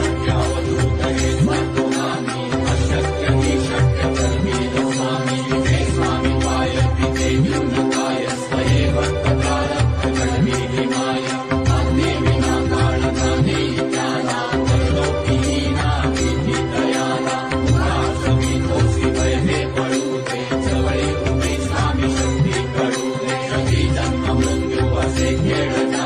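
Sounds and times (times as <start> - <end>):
mantra chanted: 0.0 - 26.0
steady drone: 0.0 - 26.0.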